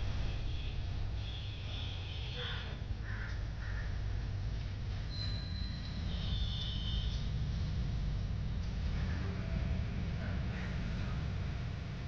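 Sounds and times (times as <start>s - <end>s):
low outdoor rumble: 0.0s - 12.0s
crows cawing: 2.4s - 4.0s.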